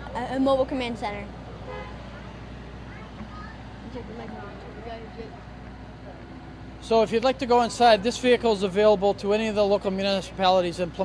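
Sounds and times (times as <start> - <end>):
faint distant voices: 0.0 - 11.0
steady low hum: 0.0 - 11.0
man speaking close: 6.8 - 11.0.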